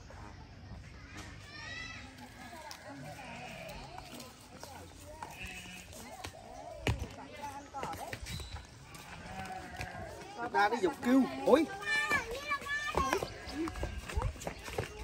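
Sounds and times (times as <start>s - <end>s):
faint voices talking: 0.0s - 15.0s.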